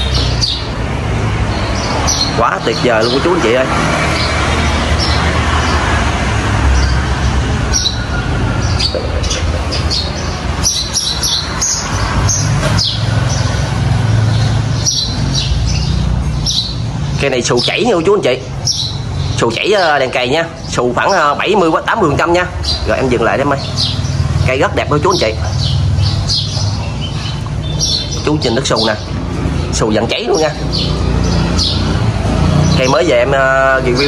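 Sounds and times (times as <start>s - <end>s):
small birds chirping: 0.0s - 34.0s.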